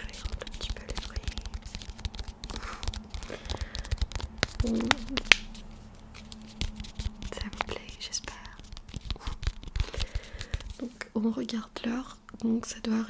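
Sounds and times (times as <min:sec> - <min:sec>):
plastic sachet crinkling: 0:00.0 - 0:10.9.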